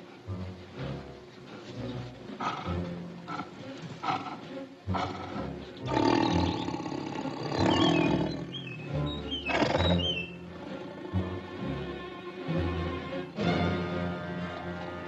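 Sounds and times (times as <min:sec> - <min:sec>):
orchestral film music: 0:00.0 - 0:15.0
big cat roaring: 0:02.4 - 0:08.6, 0:09.5 - 0:11.5
high chirping bird calls: 0:05.9 - 0:10.4.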